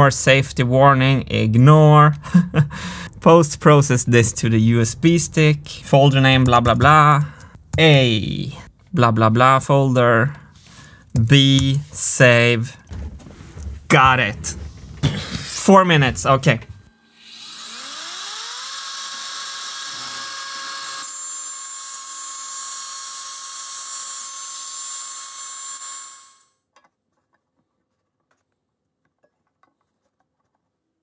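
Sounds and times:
router spindle whining: 0:16.8 - 0:26.5.

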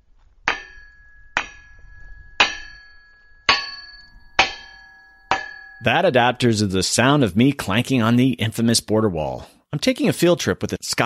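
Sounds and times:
metal strikes on steel wall: 0:00.4 - 0:06.0.

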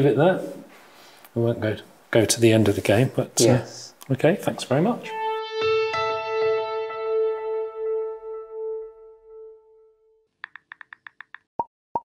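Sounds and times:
held music note: 0:05.0 - 0:10.0.

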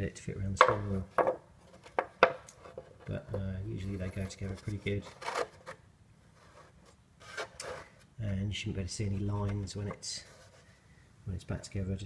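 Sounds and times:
steering wheel scraping on wood: 0:06.4 - 0:08.0.

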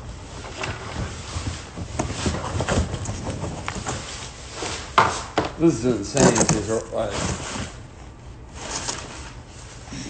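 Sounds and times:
cardboard rustling and scraping: 0:00.3 - 0:05.3, 0:05.9 - 0:07.8, 0:08.5 - 0:09.8.

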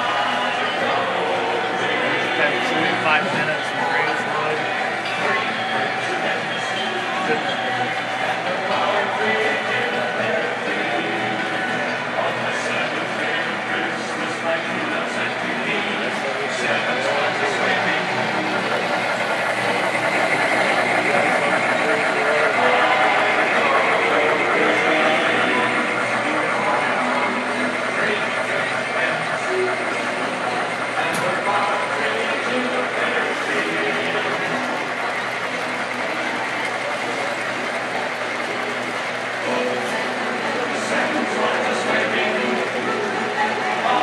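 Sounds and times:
indistinct chatter of people: 0:00.0 - 0:44.0
model trains running on track: 0:00.0 - 0:44.0.

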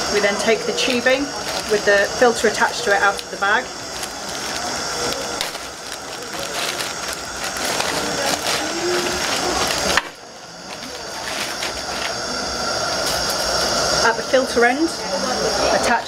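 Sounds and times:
plastic bag crinkling: 0:00.9 - 0:01.9, 0:03.0 - 0:12.1.

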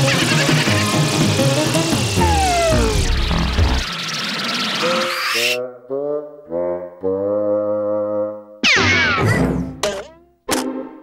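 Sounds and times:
falling whistling sweeps: 0:02.2 - 0:05.5
loud cartoon crash: 0:08.6 - 0:10.1.

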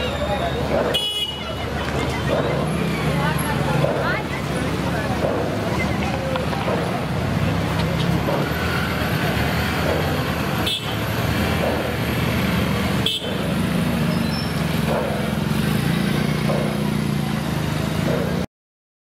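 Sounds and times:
auto-rickshaw engine running: 0:00.0 - 0:18.5
street traffic noise: 0:00.0 - 0:18.5.

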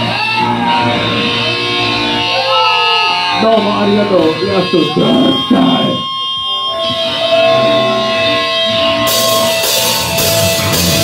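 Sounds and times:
loud electric guitars: 0:00.0 - 0:11.0.

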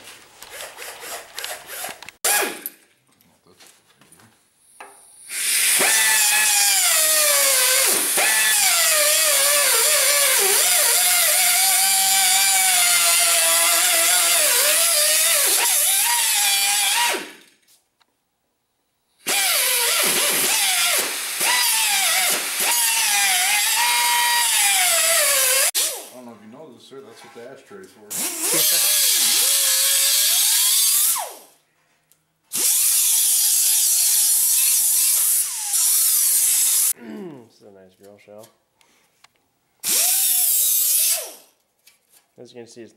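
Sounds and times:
cut-off wheel cutting steel: 0:05.3 - 0:17.5, 0:19.2 - 0:26.2, 0:28.1 - 0:31.5, 0:32.5 - 0:37.0, 0:39.8 - 0:41.5.

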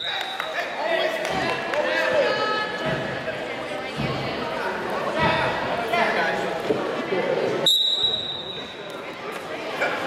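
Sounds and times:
voices in a gym: 0:00.0 - 0:10.0
referee's whistle blast: 0:07.7 - 0:08.7.

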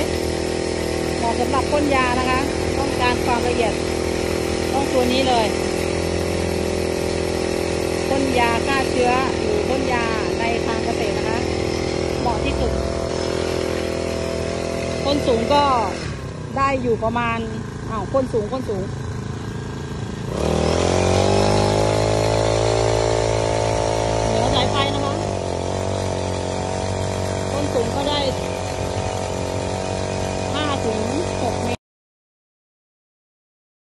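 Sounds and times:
high-pressure water jet hissing: 0:00.0 - 0:31.8
sprayer pump engine droning: 0:00.0 - 0:31.8.

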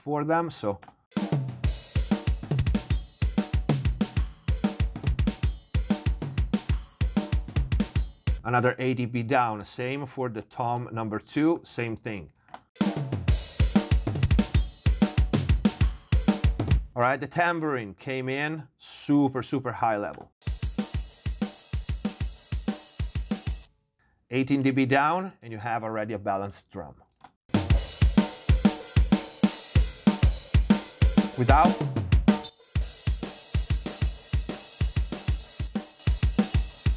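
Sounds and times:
snare drum: 0:01.2 - 0:08.0, 0:12.8 - 0:16.8, 0:20.4 - 0:23.7, 0:27.5 - 0:36.9
kick drum: 0:01.6 - 0:08.4, 0:13.3 - 0:16.9.

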